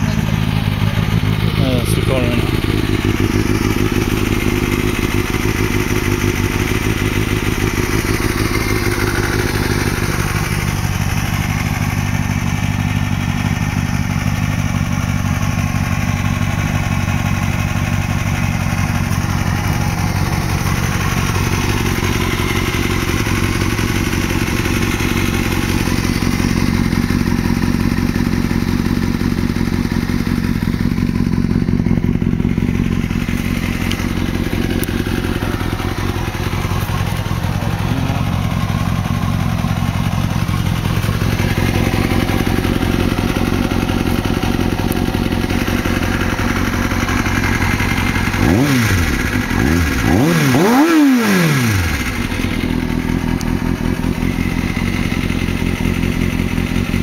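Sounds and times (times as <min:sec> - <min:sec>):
motorcycle engine idling: 0:00.0 - 0:57.0.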